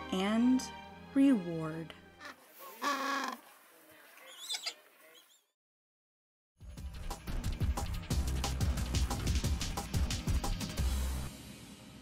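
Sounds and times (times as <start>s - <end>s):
penguin chicks peeping: 4.2s - 5.4s.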